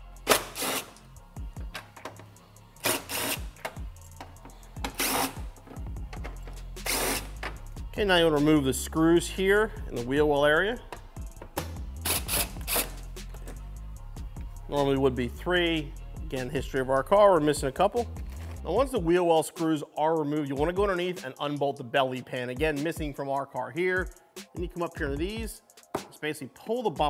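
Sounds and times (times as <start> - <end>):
background music with a beat: 0.0 - 27.0
impact driver bursts: 0.3 - 1.0, 2.8 - 3.5, 4.9 - 5.4, 6.8 - 7.3, 12.0 - 13.0.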